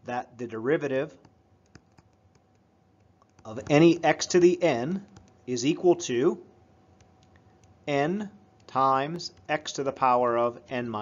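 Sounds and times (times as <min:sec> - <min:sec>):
stylus tapping on tablet screen: 0:01.2 - 0:04.0.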